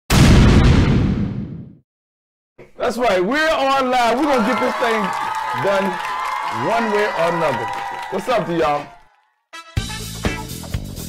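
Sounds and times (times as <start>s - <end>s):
explosion boom: 0.1s - 1.8s.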